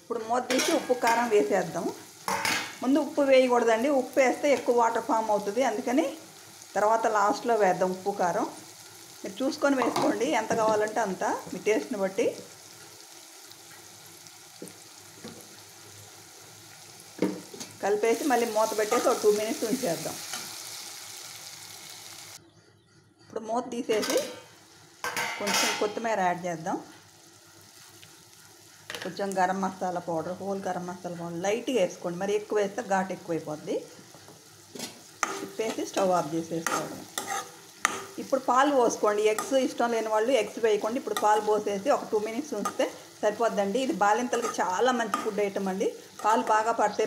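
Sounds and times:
food frying in a pan: 0.0 - 22.4, 24.0 - 47.0
light sizzle: 0.0 - 22.4, 23.9 - 47.0
spoon stirring against pan: 34.0 - 46.8
spatula stirring thick curry: 36.6 - 38.2
spatula scraping squeaks: 37.2 - 38.0.

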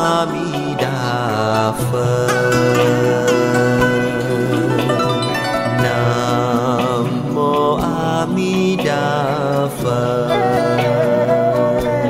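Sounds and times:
devotional chant singing: 0.0 - 12.0
plucked strings accompaniment: 0.6 - 10.0.

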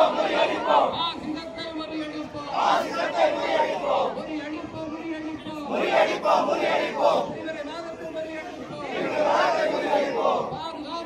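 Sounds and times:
crowd shouting slogans: 0.0 - 1.2, 2.4 - 4.4, 5.6 - 7.5, 8.4 - 10.7.

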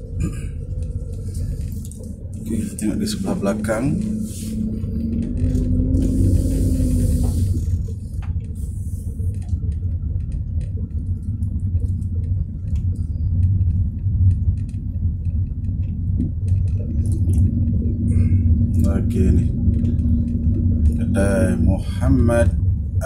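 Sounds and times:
car engine and tyres rumbling: 0.0 - 23.0.

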